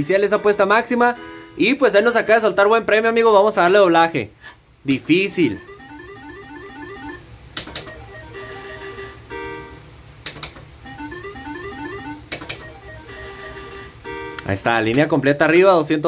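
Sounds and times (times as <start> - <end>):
rising electronic beeps: 5.6 - 7.2
sharp clicks: 7.6 - 8.0, 10.2 - 10.7, 12.3 - 12.7.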